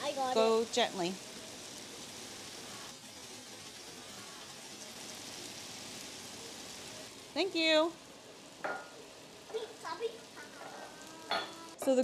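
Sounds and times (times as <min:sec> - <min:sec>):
meat sizzling in a frying pan: 0:00.0 - 0:12.0.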